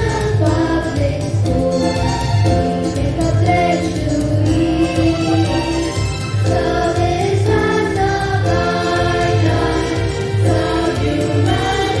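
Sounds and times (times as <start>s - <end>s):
children singing in unison: 0.0s - 1.4s, 6.5s - 12.0s.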